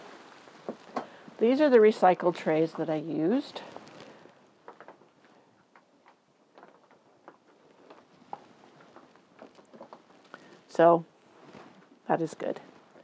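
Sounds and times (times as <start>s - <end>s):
small irregular ticks: 2.8s - 10.8s.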